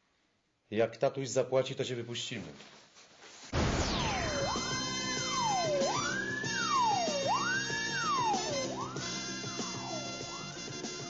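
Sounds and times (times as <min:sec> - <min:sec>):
siren-like wailing tone: 0:03.6 - 0:11.0
theme music with steady beat: 0:04.1 - 0:11.0.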